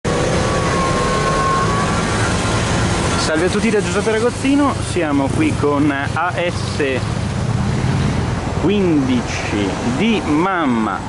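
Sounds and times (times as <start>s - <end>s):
vehicle engine rumble: 0.0s - 11.0s.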